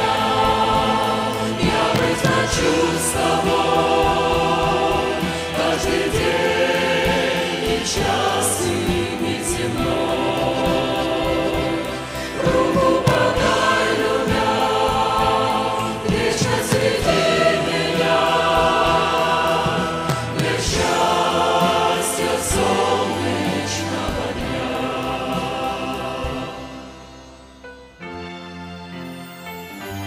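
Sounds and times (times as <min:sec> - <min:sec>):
choir singing a hymn: 0:00.0 - 0:27.6.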